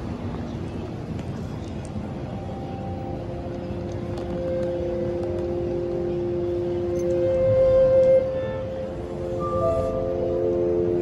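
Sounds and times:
busy street traffic: 0:00.0 - 0:11.0
soft backing track chords: 0:00.0 - 0:11.0.

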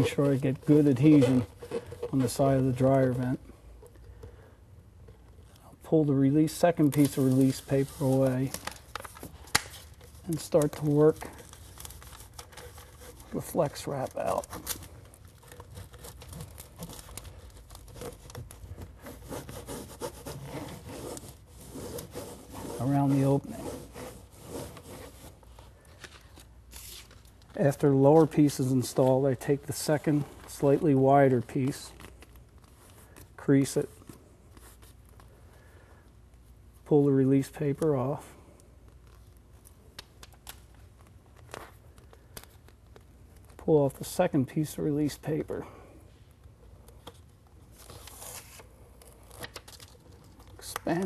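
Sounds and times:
gloved hands rubbing tape: 0:00.0 - 0:04.2, 0:06.6 - 0:33.4
paper crinkling: 0:06.4 - 0:35.8, 0:46.4 - 0:51.0.

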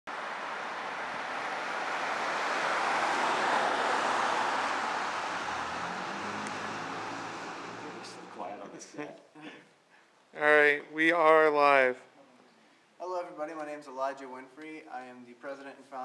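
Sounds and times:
car passing: 0:00.1 - 0:08.8.

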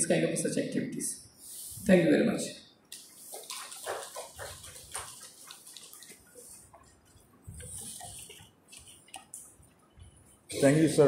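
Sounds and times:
faint shuffling: 0:03.2 - 0:11.0.

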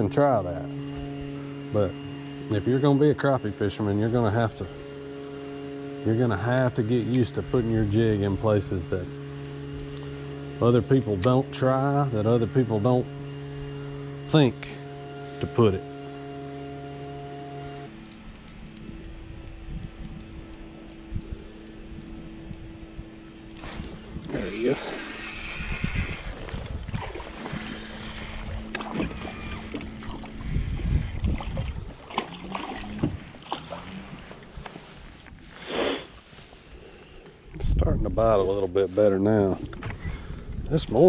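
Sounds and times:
low steady hum: 0:00.0 - 0:41.0
fishing reel cranking: 0:23.5 - 0:31.1.

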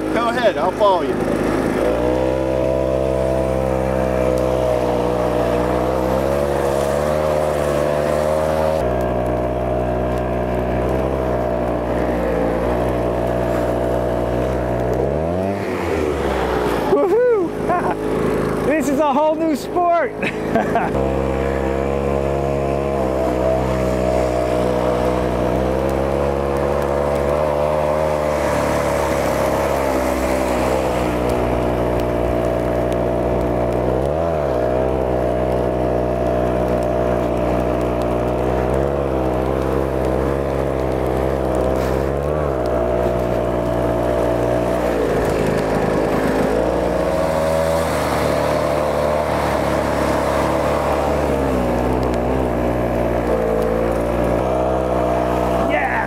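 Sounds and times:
two-stroke engine running: 0:00.0 - 0:56.0.

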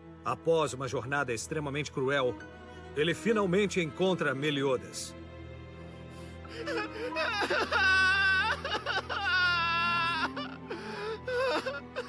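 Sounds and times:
soft background music: 0:00.0 - 0:12.0
young man sobbing and wailing: 0:06.2 - 0:12.0
gasping breaths: 0:10.4 - 0:11.8.

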